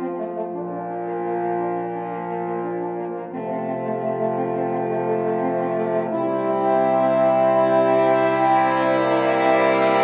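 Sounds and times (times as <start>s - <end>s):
french horns sustained chord: 0.0s - 10.0s.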